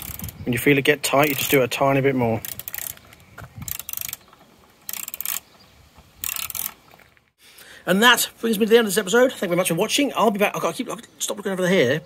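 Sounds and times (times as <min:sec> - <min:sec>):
ratchet wrench clicking: 0:00.0 - 0:00.4, 0:01.2 - 0:01.6, 0:02.4 - 0:03.0, 0:03.6 - 0:04.2, 0:04.9 - 0:05.4, 0:06.2 - 0:06.8.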